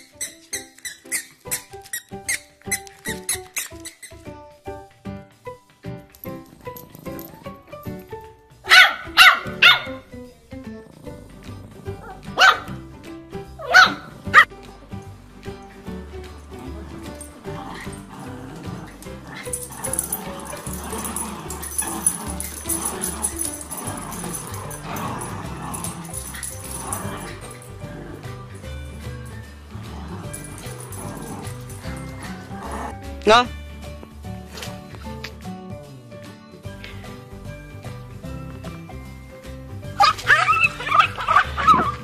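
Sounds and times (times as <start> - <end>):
background music: 0.0 - 42.0
small dog barking: 8.6 - 10.0, 12.0 - 12.8, 13.6 - 14.5, 40.0 - 42.0.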